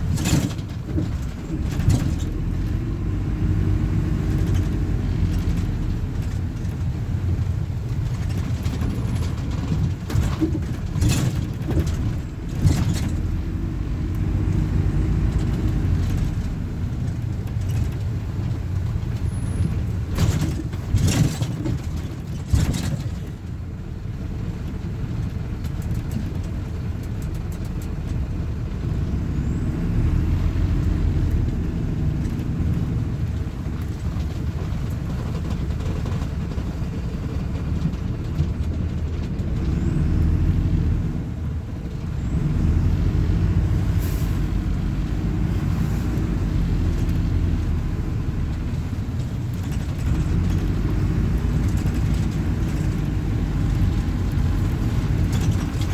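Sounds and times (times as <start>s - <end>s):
sharp knocks and rattles: 0.0s - 3.0s, 3.7s - 28.9s, 30.8s - 40.2s, 45.0s - 55.9s
diesel engine rumbling: 0.0s - 55.9s
road noise: 0.0s - 55.9s.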